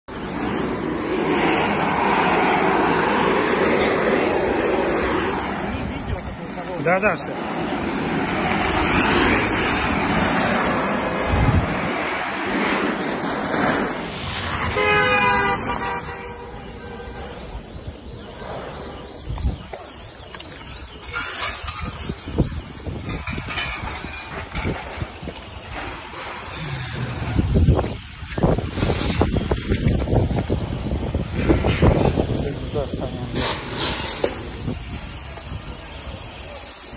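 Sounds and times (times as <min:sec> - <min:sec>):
street traffic: 0:00.0 - 0:36.9
car horn: 0:14.6 - 0:17.6.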